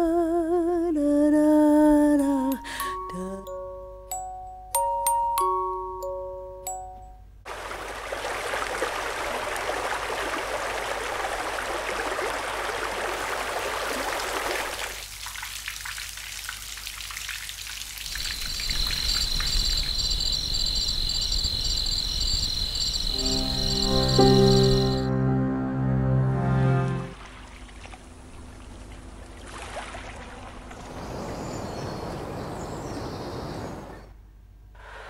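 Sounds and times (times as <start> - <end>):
rain hissing: 17.8 - 27.1.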